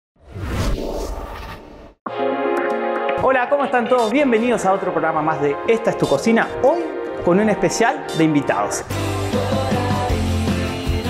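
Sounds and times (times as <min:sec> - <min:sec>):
whoosh with deep rumble: 0:00.2 - 0:02.0.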